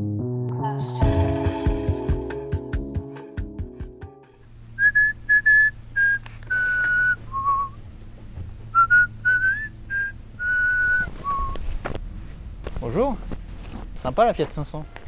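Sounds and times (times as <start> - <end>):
person whistling a tune: 4.8 - 7.8, 8.8 - 11.6.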